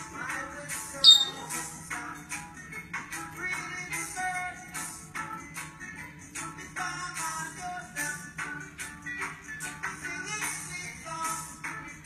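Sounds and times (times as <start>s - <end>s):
background music with steady beat: 0.0s - 12.0s
high-pitched chirp: 1.0s - 1.6s.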